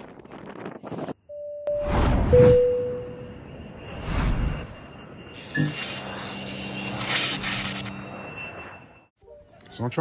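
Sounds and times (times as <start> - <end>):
short tone: 1.3 - 9.1
whoosh: 1.8 - 5.4.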